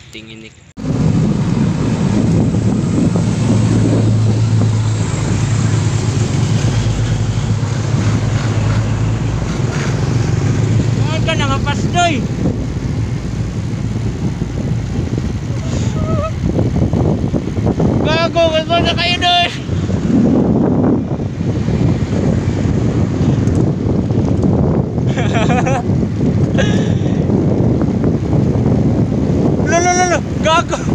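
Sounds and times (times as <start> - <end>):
low engine hum: 0.0 - 30.9
wind buffeting microphone: 0.0 - 30.9
short voices: 15.5 - 16.4.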